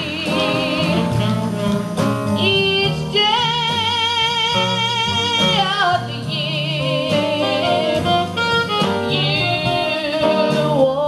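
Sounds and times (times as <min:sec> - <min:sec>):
jazz band accompaniment: 0:00.0 - 0:11.0
upright double bass: 0:00.0 - 0:11.0
woman singing with vibrato: 0:00.0 - 0:11.0.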